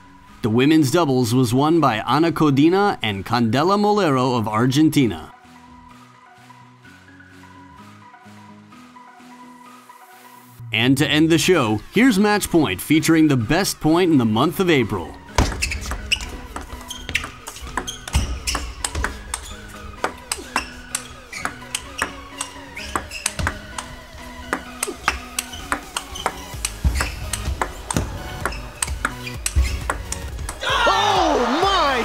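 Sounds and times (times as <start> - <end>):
background music: 0.0 - 32.0
table tennis ball clicking: 15.9 - 30.6.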